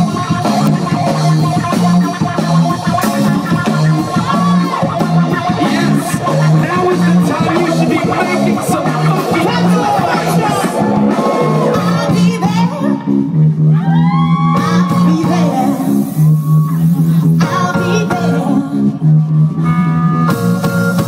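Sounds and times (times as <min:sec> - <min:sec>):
live drum and bass band: 0:00.0 - 0:21.0
low held bass notes: 0:00.0 - 0:21.0.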